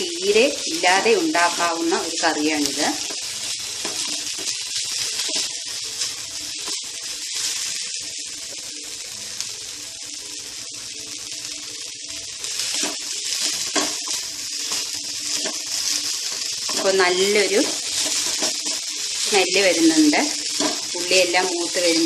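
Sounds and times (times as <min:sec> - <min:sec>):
vegetables sizzling in oil: 0:00.0 - 0:22.0.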